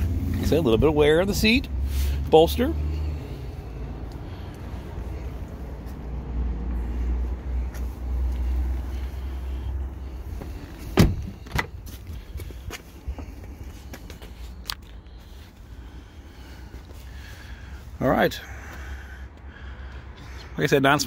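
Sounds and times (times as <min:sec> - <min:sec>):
car door shutting thud: 0:10.9 - 0:11.8.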